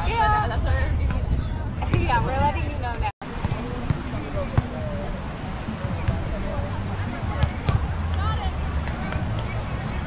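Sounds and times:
outdoor noise: 0.0s - 10.0s
voices of players and spectators: 0.0s - 10.0s.

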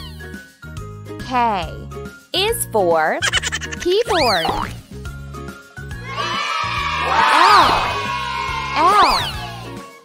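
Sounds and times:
repeating bass line: 3.2s - 4.8s.

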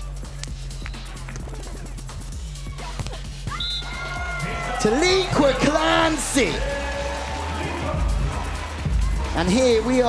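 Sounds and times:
music with low bass line: 0.0s - 10.0s.

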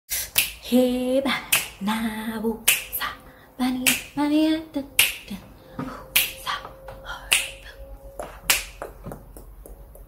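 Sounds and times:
sharp finger snaps: 0.3s - 0.6s, 1.5s - 1.8s, 2.7s - 2.9s, 3.8s - 4.1s, 5.0s - 5.2s, 6.2s - 6.4s, 7.3s - 7.6s, 8.5s - 8.7s
faint background music: 0.8s - 10.0s.

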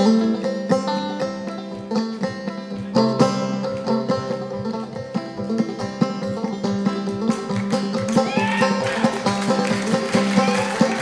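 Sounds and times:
banjo plucked and brushed: 0.0s - 11.0s.

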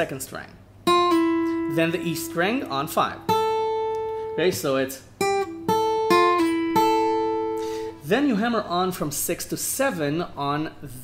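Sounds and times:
acoustic guitar fingerpicked: 0.8s - 8.1s.

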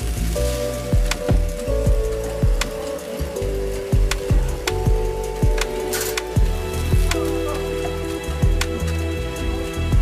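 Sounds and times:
music with held notes: 0.0s - 10.0s
soil pouring hiss: 0.0s - 10.0s.

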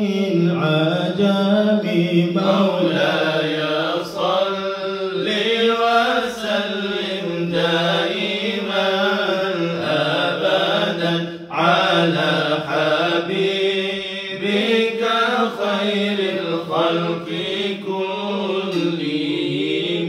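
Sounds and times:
men chanting: 0.0s - 20.0s.

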